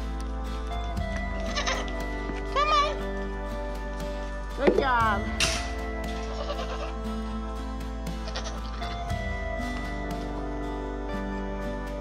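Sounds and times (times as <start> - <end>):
background music: 0.0 - 12.0
goat bleating: 1.4 - 3.0, 6.2 - 7.0, 8.2 - 8.9.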